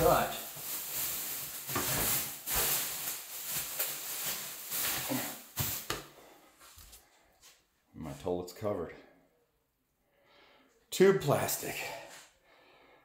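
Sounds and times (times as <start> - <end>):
plastic sheeting rustling: 0.0 - 7.0.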